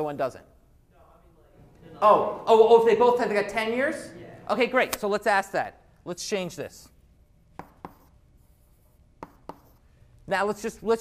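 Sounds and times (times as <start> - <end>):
chalk scratching on blackboard: 7.6 - 9.9.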